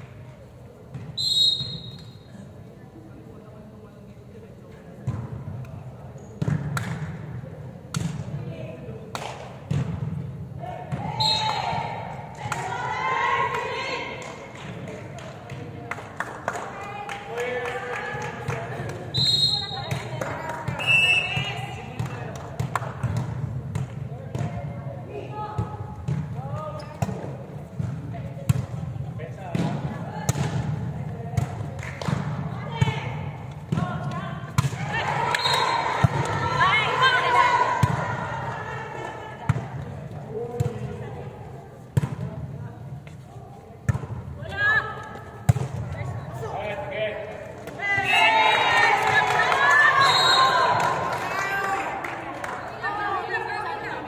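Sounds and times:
players calling and shouting: 0.2 - 3.7, 6.2 - 15.9, 16.6 - 54.0
volleyball hits and bounces: 6.4 - 7.2, 7.8 - 8.4, 9.0 - 10.2, 18.2 - 24.8, 25.5 - 38.3, 39.4 - 41.0, 41.9 - 42.4, 43.8 - 46.2.

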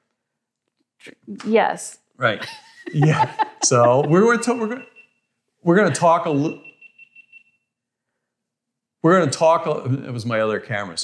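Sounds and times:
faint high electronic tone: 3.7 - 7.7.

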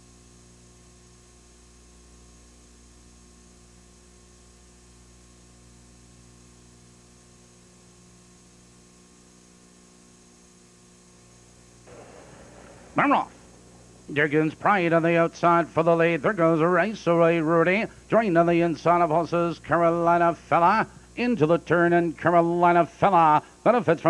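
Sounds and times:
electrical mains hum: 0.0 - 24.0
faint hiss: 7.8 - 24.0.

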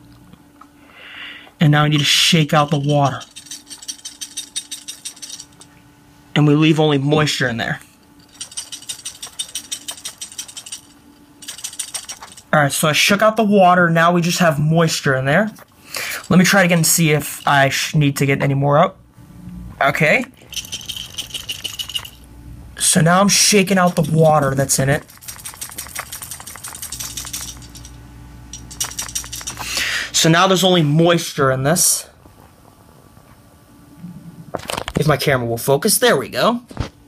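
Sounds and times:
toy rattling clicks: 2.7 - 5.7, 8.3 - 12.5, 20.5 - 22.2, 23.8 - 29.6.

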